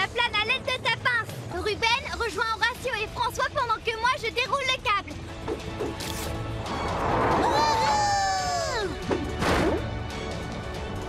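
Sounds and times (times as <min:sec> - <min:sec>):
cartoon soundtrack music: 0:03.6 - 0:11.0.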